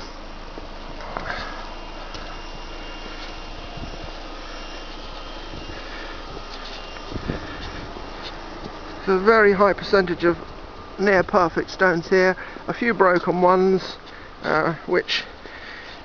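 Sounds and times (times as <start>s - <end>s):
residential street background noise: 0.0s - 16.0s.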